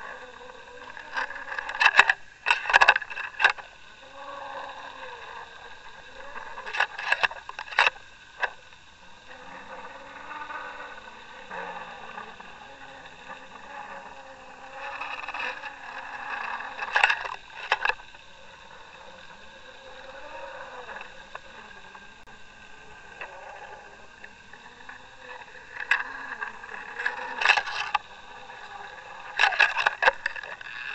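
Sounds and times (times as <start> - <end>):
low wavering hum: 0.0 - 30.9
underwater boat engine whine: 0.0 - 30.9.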